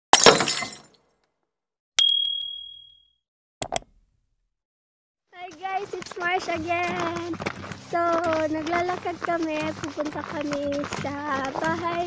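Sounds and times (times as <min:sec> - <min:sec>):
glass shattering crash: 0:00.1 - 0:01.0
bright ding: 0:02.0 - 0:03.1
mouse clicks: 0:03.6 - 0:03.9.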